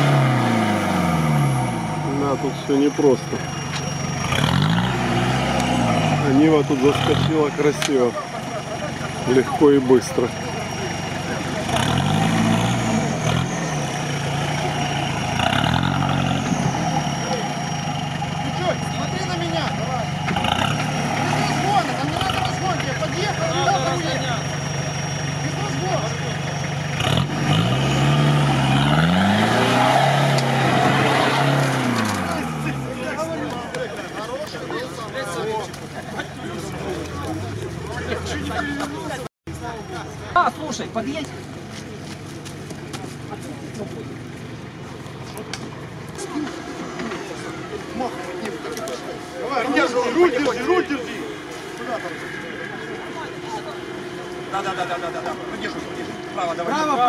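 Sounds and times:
crowd voices: 0.0 - 57.0
off-road engine revving: 0.0 - 57.0.

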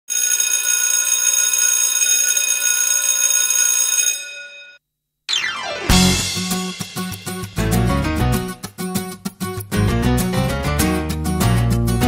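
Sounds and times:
falling pitch sweep: 5.3 - 8.3
music: 5.3 - 12.0.

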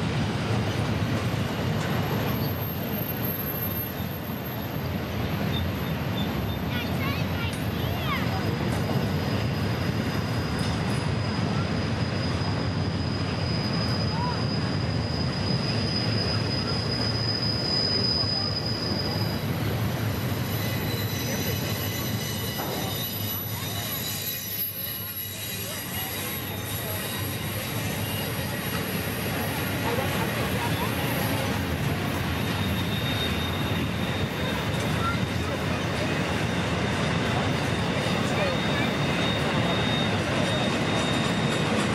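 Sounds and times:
train wheels rumbling on rails: 0.0 - 41.9
high wheel squeal: 0.6 - 41.9.

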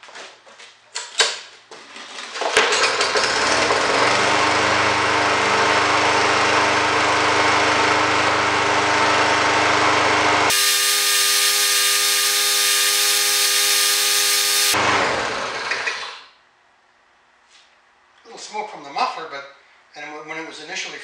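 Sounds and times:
lawn mower engine running: 2.9 - 16.2.

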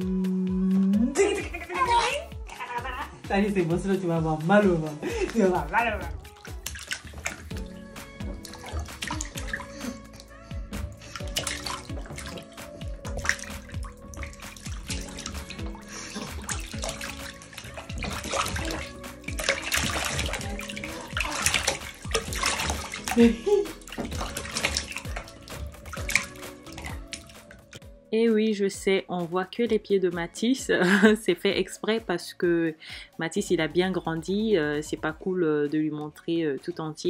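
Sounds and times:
background music: 0.0 - 37.0
bath water splashing: 3.6 - 27.9.

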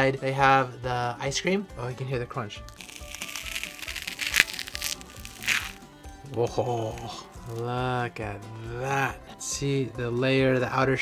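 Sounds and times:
background music: 0.0 - 11.0
spoon crunching through ice: 2.7 - 5.8.

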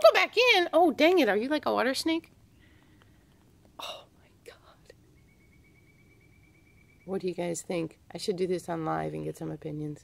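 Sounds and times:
faint ticks: 2.7 - 3.8
woman whispering: 3.8 - 5.0.

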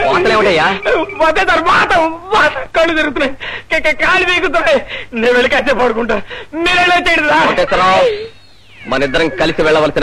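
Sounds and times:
man's high wavering voice: 7.4 - 10.0.

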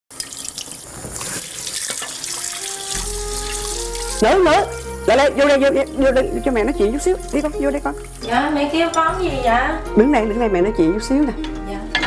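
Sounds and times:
tap water running into sink: 0.1 - 5.0, 6.3 - 9.0
background music: 2.0 - 12.0.

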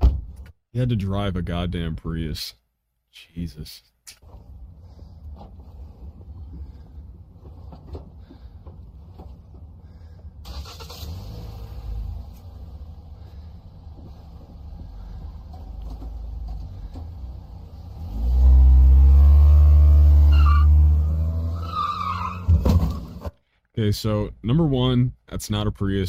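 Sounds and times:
car engine revving: 9.6 - 23.3.

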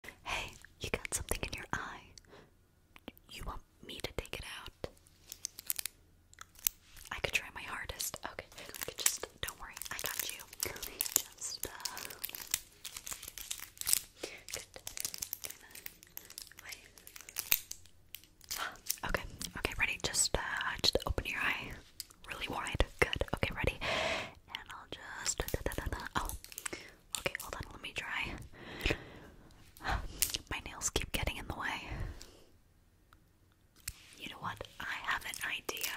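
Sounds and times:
woman whispering: 0.0 - 2.2, 3.0 - 5.0, 7.1 - 12.4, 14.2 - 15.9, 16.5 - 17.0, 18.6 - 28.5, 29.8 - 32.2, 34.2 - 35.9.

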